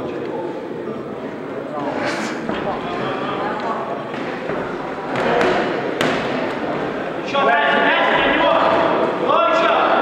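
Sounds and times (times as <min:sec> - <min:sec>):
sports hall background noise: 0:00.0 - 0:10.0.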